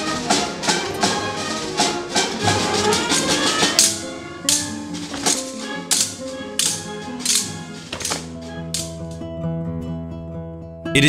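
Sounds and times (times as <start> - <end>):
brass band music: 0.0 - 9.1
swords clashing: 2.6 - 9.2.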